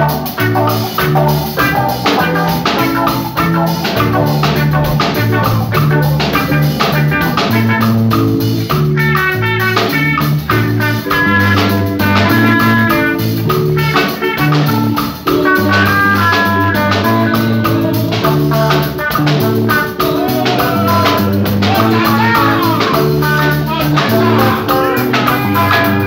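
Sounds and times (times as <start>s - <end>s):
congas: 0.0s - 26.0s
drum kit: 0.0s - 26.0s
electric bass line: 0.0s - 26.0s
high melodic runs: 0.0s - 26.0s.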